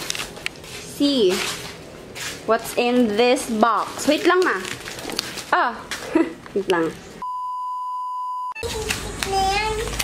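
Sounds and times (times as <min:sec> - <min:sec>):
high-pitched censor beep: 0:07.2 - 0:08.6.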